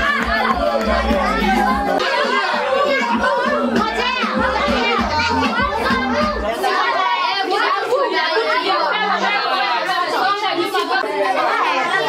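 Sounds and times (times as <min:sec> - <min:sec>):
dance music with bass beat: 0:00.0 - 0:02.0, 0:03.1 - 0:06.5
children talking and shouting: 0:00.0 - 0:12.0.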